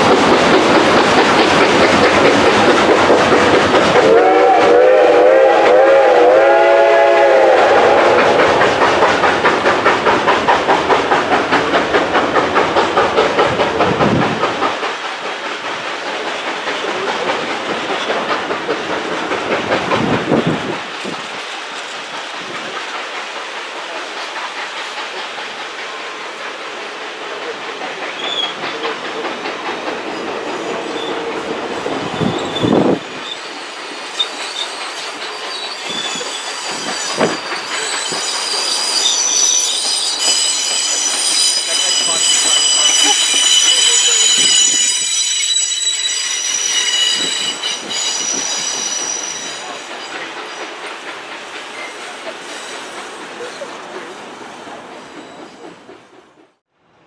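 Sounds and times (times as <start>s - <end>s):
train wheels rumbling on track: 0.0s - 56.7s
wheel flanges squealing: 30.1s - 50.6s.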